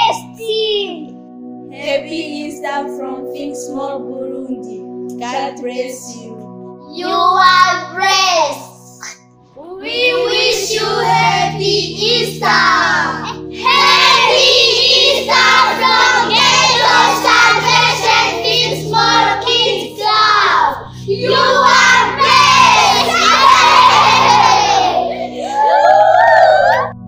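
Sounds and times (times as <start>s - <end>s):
background music with low chords: 0.0s - 27.0s
children shouting together: 9.8s - 26.8s.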